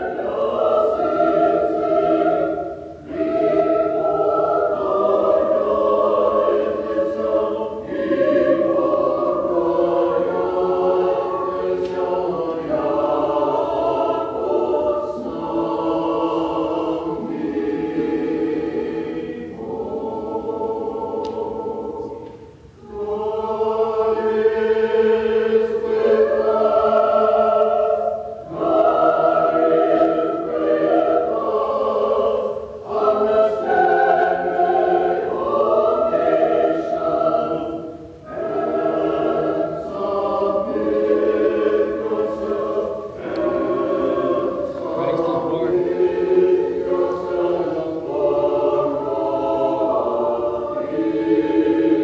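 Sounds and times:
church choir singing a hymn: 0.0 - 52.0.

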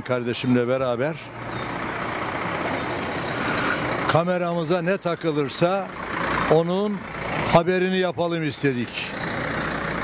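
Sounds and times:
vehicle passing: 1.2 - 8.0.

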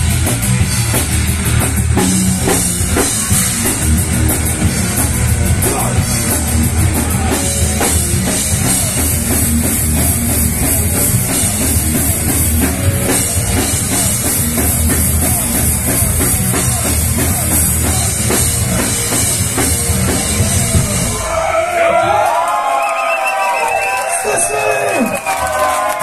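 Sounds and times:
live metal band playing: 0.0 - 22.3
drum-kit hits: 0.0 - 22.5.

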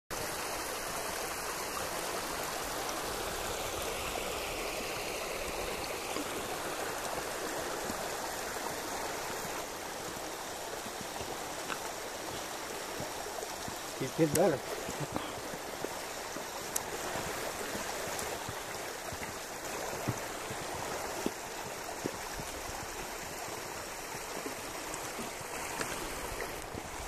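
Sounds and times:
running water rushing: 0.1 - 27.0.

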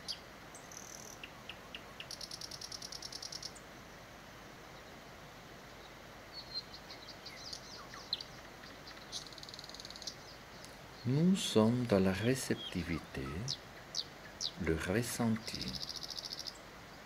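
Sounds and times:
small bird trilling and chirping: 0.0 - 3.6, 6.3 - 14.6, 15.2 - 16.6.

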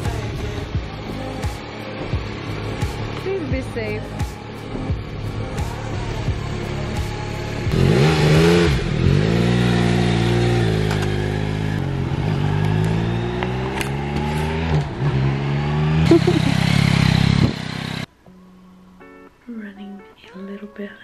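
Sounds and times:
motorcycle engine revving: 5.0 - 18.1.

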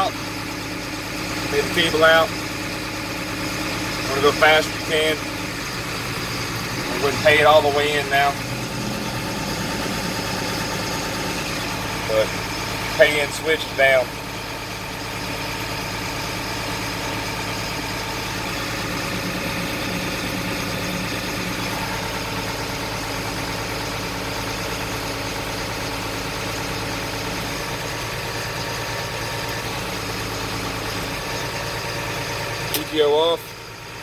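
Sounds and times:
diesel truck engine idling: 0.0 - 34.0.

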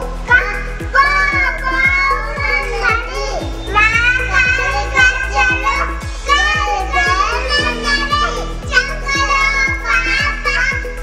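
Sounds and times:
music with steady beat: 0.0 - 11.0
young children singing: 0.0 - 11.0.

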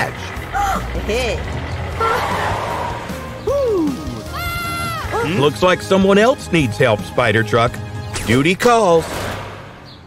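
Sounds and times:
cartoon background music: 1.9 - 9.0.

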